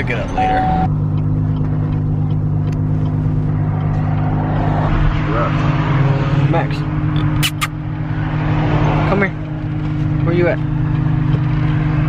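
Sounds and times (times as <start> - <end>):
car engine droning: 0.0 - 12.0.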